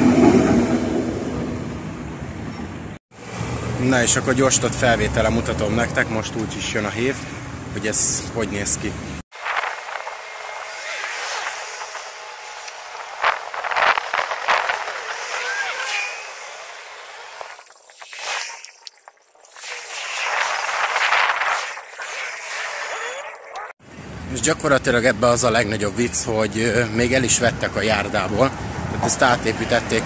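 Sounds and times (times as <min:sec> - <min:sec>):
sped-up traffic hissy rush: 0:09.3 - 0:18.7, 0:19.6 - 0:23.5
squeaky gliding chirps: 0:10.2 - 0:23.8.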